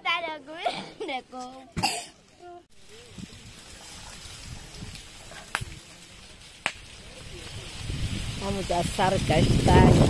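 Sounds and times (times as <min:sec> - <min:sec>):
fire burning with steady hiss: 0:02.1 - 0:10.0
wind buffeting microphone: 0:03.0 - 0:05.9, 0:06.6 - 0:10.0
sharp pops: 0:05.4 - 0:05.8, 0:06.6 - 0:06.9.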